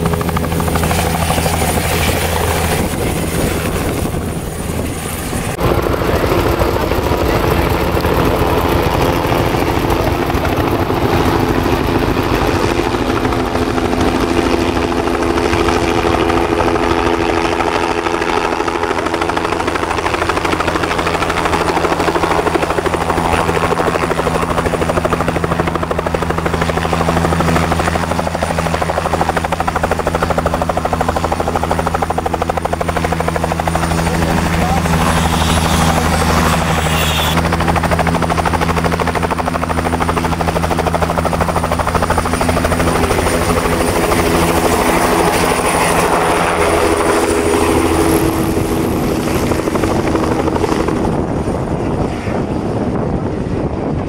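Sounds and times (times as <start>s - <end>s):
helicopter engine whine: 0.0s - 54.0s
helicopter rotor beating: 0.0s - 54.0s.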